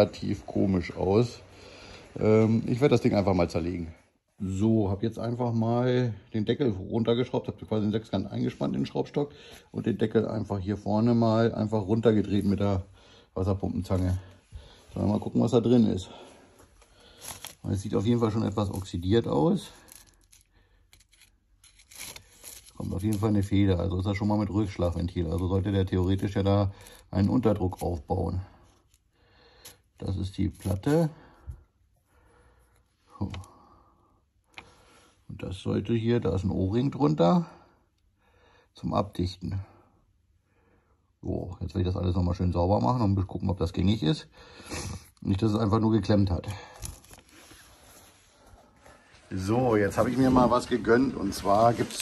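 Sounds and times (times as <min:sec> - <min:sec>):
man speaking: 0:00.0 - 0:14.3, 0:14.9 - 0:16.3, 0:17.6 - 0:19.8, 0:30.0 - 0:31.2, 0:49.2 - 0:52.0.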